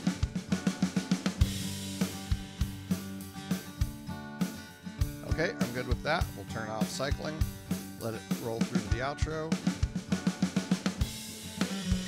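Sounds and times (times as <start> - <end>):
rock drum kit loop: 0.0 - 12.0.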